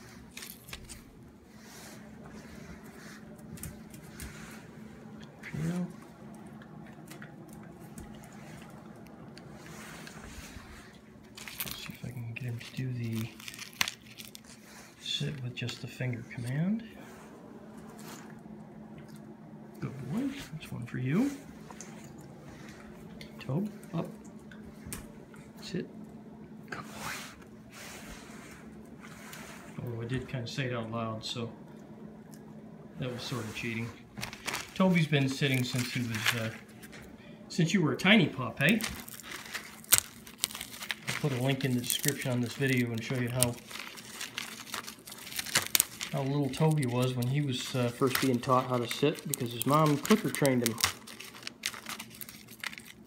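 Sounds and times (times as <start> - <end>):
steady low hum: 0.0 - 53.0
peanut shells cracking: 11.3 - 14.5, 38.6 - 53.0.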